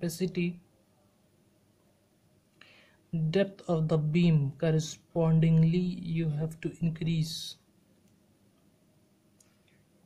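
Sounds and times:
faint breath-like hiss: 2.6s - 3.1s.

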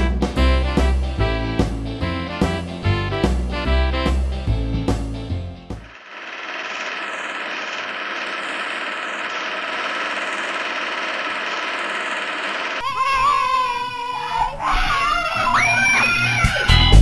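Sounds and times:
music: 0.0s - 5.9s, 15.6s - 17.0s
film projector clatter and crackle: 5.9s - 12.9s.

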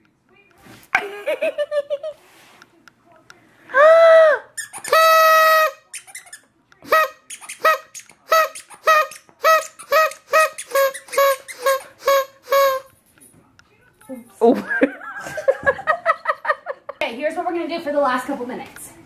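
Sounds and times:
squeaky toy squeaking: 4.5s - 12.9s.

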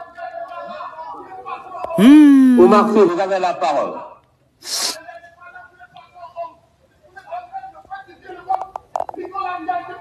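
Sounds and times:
sharp breathy hiss: 4.6s - 5.0s.

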